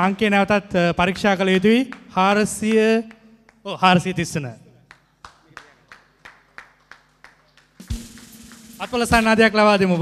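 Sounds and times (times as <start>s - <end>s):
slow hand clapping: 1.1s - 3.7s, 4.8s - 9.2s.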